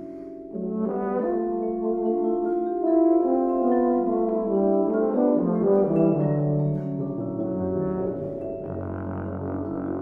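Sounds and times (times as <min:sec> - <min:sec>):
euphonium and tuba held notes: 0:00.0 - 0:10.0
marimba: 0:00.0 - 0:10.0.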